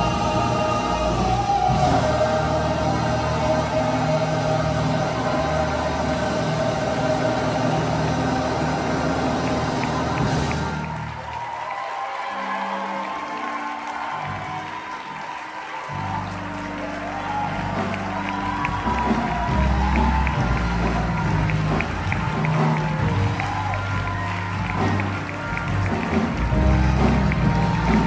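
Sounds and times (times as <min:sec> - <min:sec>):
gospel choir holding a chord: 0:00.0 - 0:28.0.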